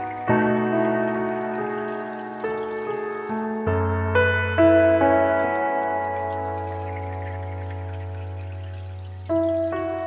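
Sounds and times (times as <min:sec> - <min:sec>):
faint running water: 0:00.0 - 0:10.0
slow meditative piano: 0:00.0 - 0:10.0.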